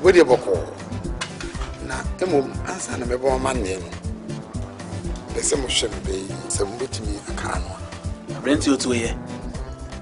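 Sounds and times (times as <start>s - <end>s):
background music: 0.0s - 10.0s
man speaking: 5.3s - 9.2s.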